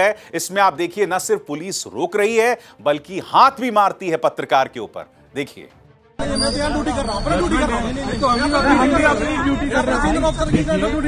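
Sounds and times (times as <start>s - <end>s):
men arguing: 6.4s - 11.0s.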